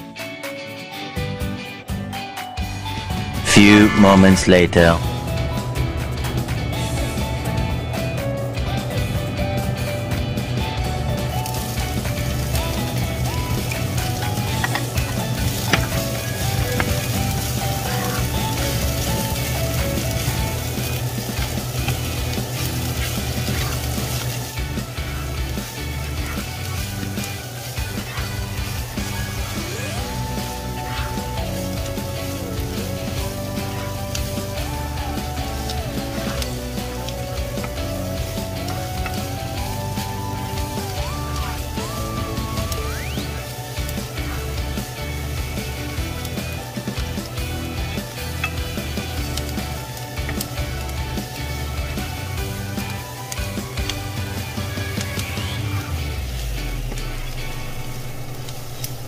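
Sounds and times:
background music: 0:00.0 - 0:59.0
onions sizzling in a frying pan: 0:05.5 - 0:59.0.

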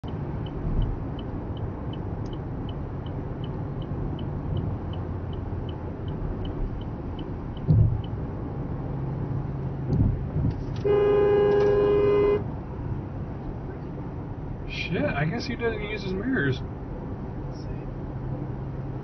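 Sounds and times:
turn signal ticking: 0:00.0 - 0:11.8
road noise inside a car: 0:00.0 - 0:19.0
car horn blast: 0:10.8 - 0:12.5.

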